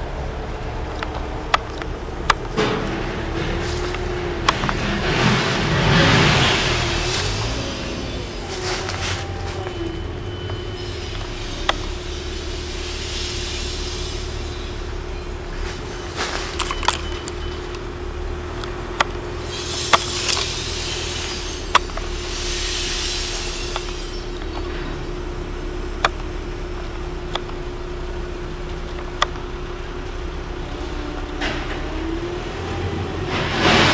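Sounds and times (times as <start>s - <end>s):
diesel engine running: 0.0s - 33.9s
hiss: 10.8s - 15.2s, 19.4s - 24.5s.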